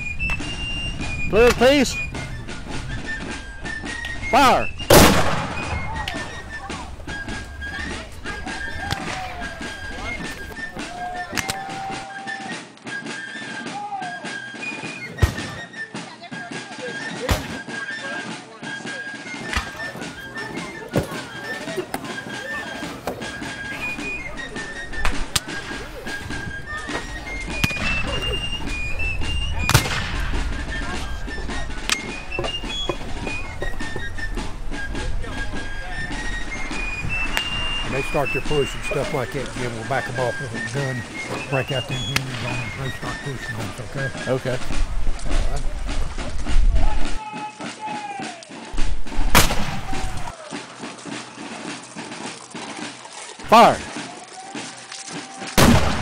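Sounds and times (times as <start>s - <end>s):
high stepped fife tune: 0.0s - 12.0s, 19.2s - 46.2s
rifle shots: 4.8s - 5.9s, 29.7s - 30.4s, 49.3s - 49.9s, 55.6s - 56.0s
cannon boom: 4.8s - 6.0s, 29.4s - 30.5s, 49.2s - 50.0s, 55.6s - 56.0s.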